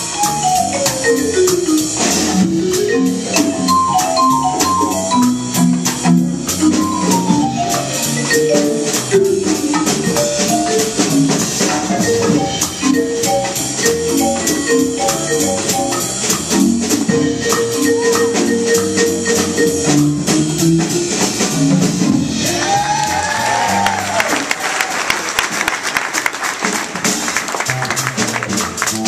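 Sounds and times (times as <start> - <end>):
electric keyboard melody: 0.0 - 22.4
congas: 0.0 - 24.6, 25.4 - 29.0
drums: 0.0 - 29.0.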